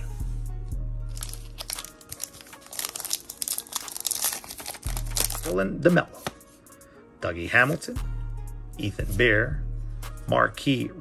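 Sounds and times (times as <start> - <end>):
background music: 0.0 - 11.0
foil wrapper tearing and crinkling: 1.1 - 5.5.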